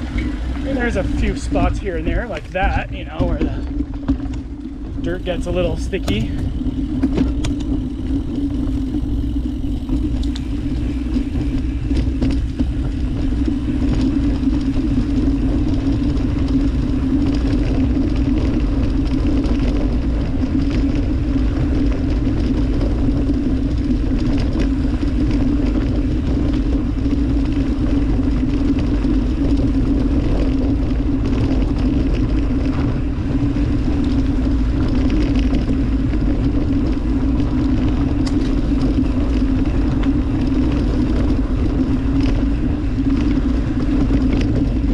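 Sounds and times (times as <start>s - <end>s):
bike clicks and rattles: 0.0s - 44.9s
bike tyres rumbling on dirt: 0.0s - 44.9s
constant low buzz: 0.0s - 44.9s
wind on microphone: 0.0s - 44.9s.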